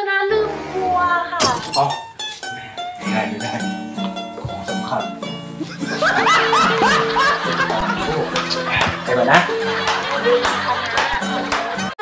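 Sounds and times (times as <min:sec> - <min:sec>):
background music: 0:00.0 - 0:12.0
people laughing: 0:05.5 - 0:12.0.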